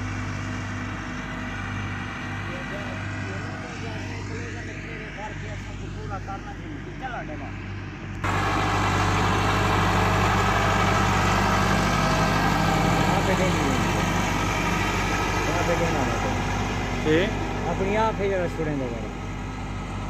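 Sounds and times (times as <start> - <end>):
tractor diesel engine running: 0.0 - 20.0.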